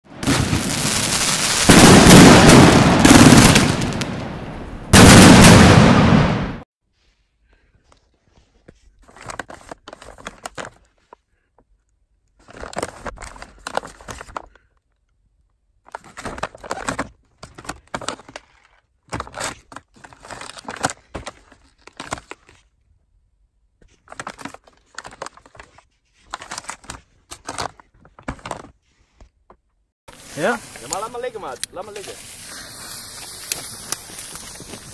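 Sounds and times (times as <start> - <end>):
fireworks crackling pops: 0.1 - 6.6, 30.1 - 34.9
fireworks exploding: 0.1 - 6.6, 30.1 - 34.9.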